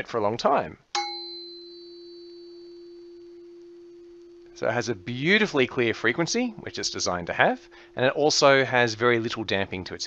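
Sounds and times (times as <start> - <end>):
tuning fork ringing: 0.9 - 9.3.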